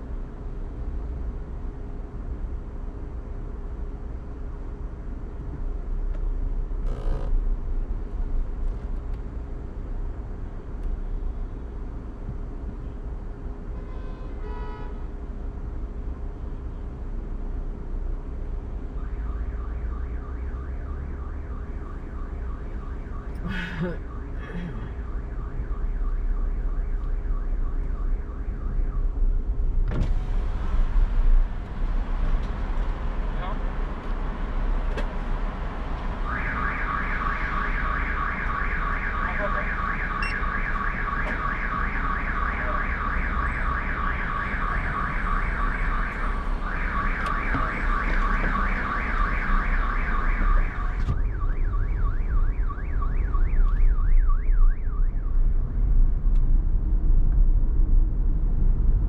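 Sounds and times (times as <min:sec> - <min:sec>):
road and engine rumble: 0:00.0 - 0:59.0
car alarm warbling: 0:06.9 - 0:07.3, 0:36.3 - 0:55.2.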